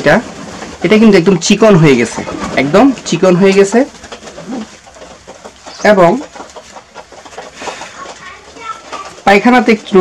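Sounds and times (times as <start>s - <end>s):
people talking: 0.0s - 3.9s, 8.0s - 10.0s
pigeons cooing: 0.0s - 10.0s.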